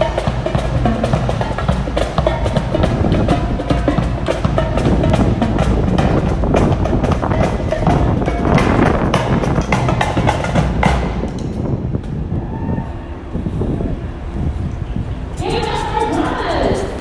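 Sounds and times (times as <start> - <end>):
music with drum beat: 0.0 - 11.3.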